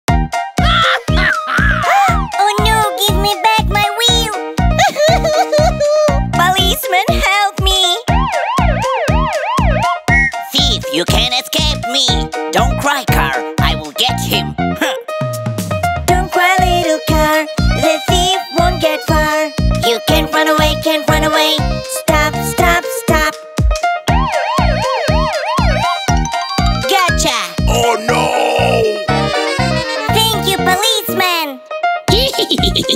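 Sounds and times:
children's song beat: 1.9 - 5.7, 6.4 - 9.4, 10.1 - 14.5, 16.0 - 32.9
police siren wail: 8.1 - 9.9, 24.1 - 26.0.

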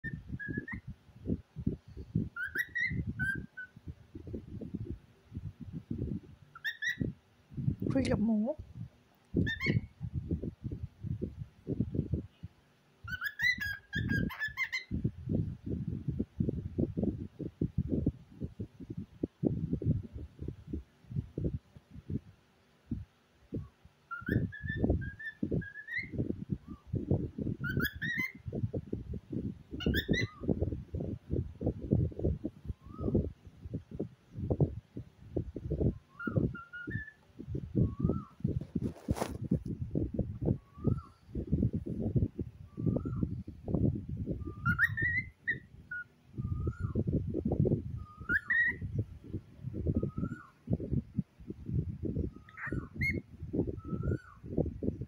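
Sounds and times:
cockatiel whistled chirps: 0.0 - 0.8, 2.4 - 3.8, 6.6 - 7.0, 13.1 - 14.9, 24.1 - 26.8, 27.6 - 28.4, 29.8 - 30.5, 36.1 - 37.2, 44.4 - 47.0, 48.0 - 48.8, 50.0 - 50.5, 52.3 - 53.2, 53.8 - 54.4
cockatiel whistling: 0.0 - 0.8, 2.4 - 3.7, 44.5 - 47.0, 48.1 - 48.8, 50.0 - 50.5, 52.4 - 53.2.

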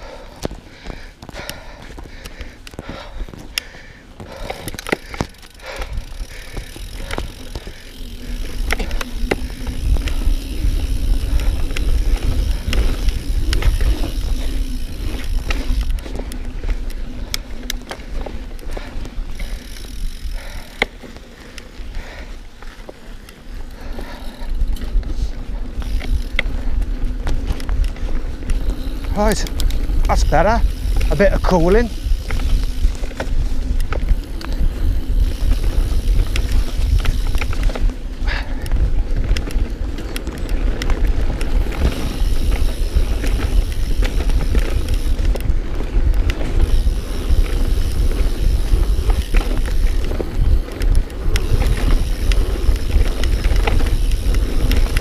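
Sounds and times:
bike clicks and rattles: 0.0 - 55.0
tyre noise on dirt: 0.0 - 55.0
wind rumble on microphone: 4.2 - 20.7, 24.1 - 55.0.

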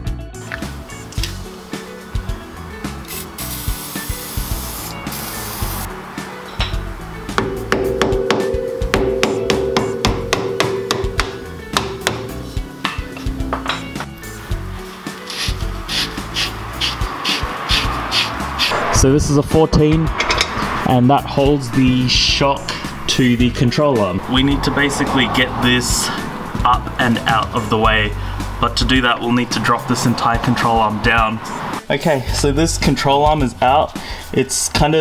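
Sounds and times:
background music: 0.0 - 35.0
aerosol spray hissing: 2.9 - 5.9, 15.3 - 18.8
muffled hammer knocks on metal: 6.5 - 14.2.

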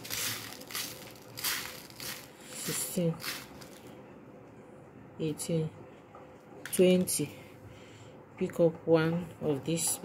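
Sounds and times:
needle scraping through beads: 0.0 - 3.8
beads rustling in a plastic tub: 0.0 - 3.9.

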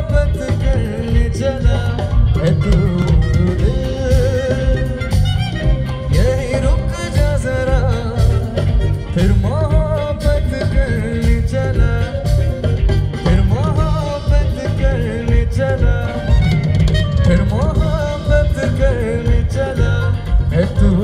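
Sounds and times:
live band playing: 0.0 - 21.0
man singing: 0.0 - 21.0.

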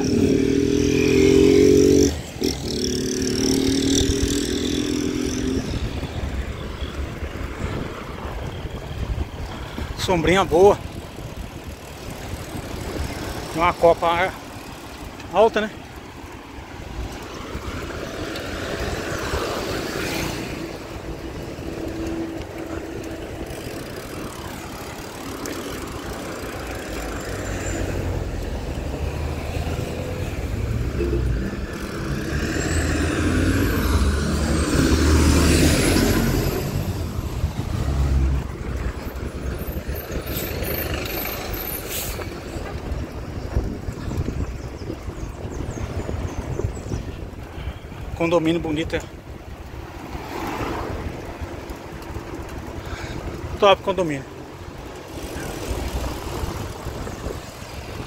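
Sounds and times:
street traffic: 0.0 - 58.0.

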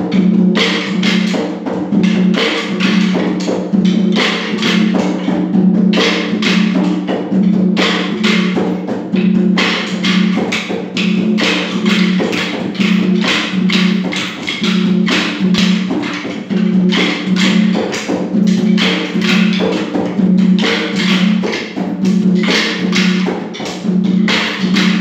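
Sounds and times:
drumming: 0.0 - 25.0.

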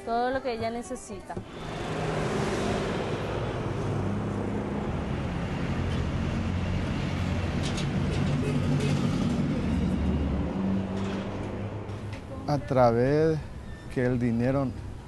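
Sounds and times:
engines running: 1.4 - 13.6
cars passing: 1.4 - 15.0.

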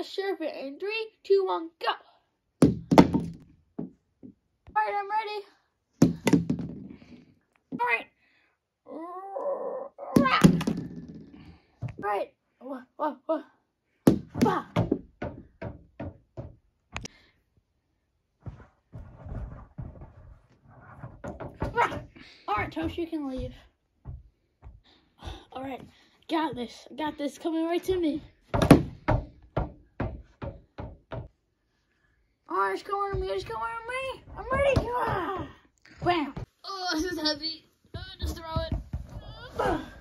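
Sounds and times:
dull thunks on ping-pong table: 2.6 - 4.4, 6.0 - 7.0, 10.2 - 12.0, 28.5 - 31.3
rustling and bumping: 18.4 - 24.8, 38.0 - 39.6.

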